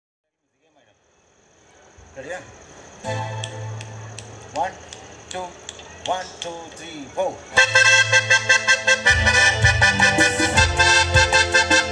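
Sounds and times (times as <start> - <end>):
accordion low bass note: 3.0 - 4.1, 7.6 - 11.9.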